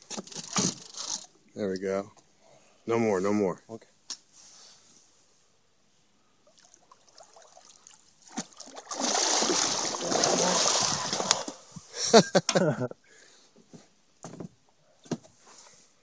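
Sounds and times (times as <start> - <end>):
fish splashing in water: 6.6 - 11.6.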